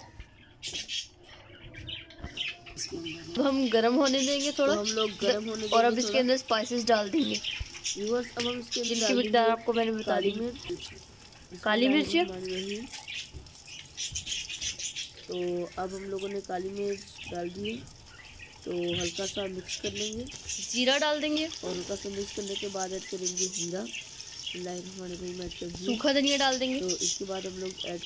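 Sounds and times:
faint bird chirps: 0.0s - 11.1s, 12.0s - 28.0s
crackles: 2.0s - 28.0s
food sizzling in hot oil: 2.4s - 28.0s.

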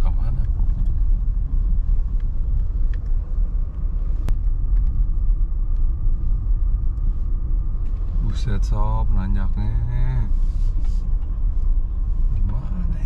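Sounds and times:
car engine and road rumble: 0.0s - 13.0s.

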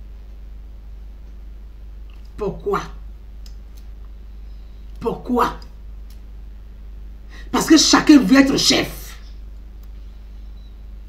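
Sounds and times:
low steady hum: 0.0s - 11.0s
faint clicks: 3.4s - 4.2s, 5.6s - 6.3s, 9.6s - 10.0s.

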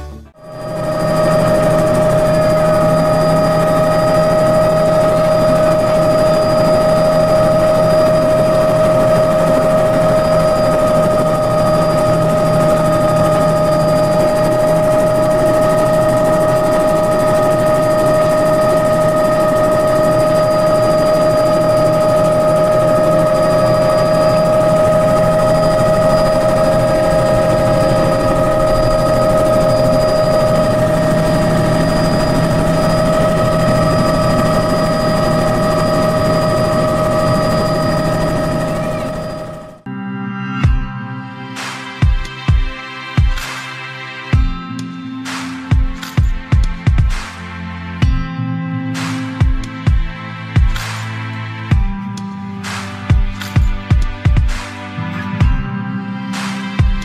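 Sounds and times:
helicopter rotor and engine noise: 0.0s - 39.9s, 41.6s - 48.2s, 49.0s - 54.8s
helicopter high whine: 0.0s - 40.0s, 44.3s - 48.3s, 49.0s - 57.0s.

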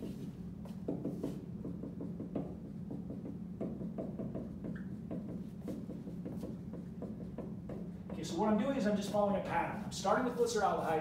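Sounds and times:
scratchy writing stroke on board: 0.0s - 1.4s, 5.0s - 7.4s
steady low hum: 0.0s - 11.0s
writing tool tapping board: 0.8s - 8.3s.

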